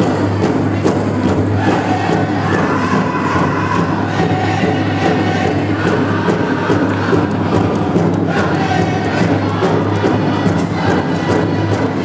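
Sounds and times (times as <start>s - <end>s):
big drum beat: 0.0s - 12.0s
crowd hum: 0.0s - 12.0s
singers chanting in high voices: 1.3s - 12.0s.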